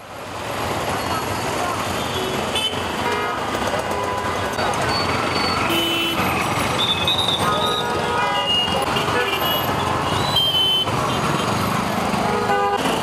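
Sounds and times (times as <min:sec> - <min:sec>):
car engines running: 0:00.0 - 0:13.0
car horns tooting: 0:02.0 - 0:11.6, 0:12.2 - 0:13.0.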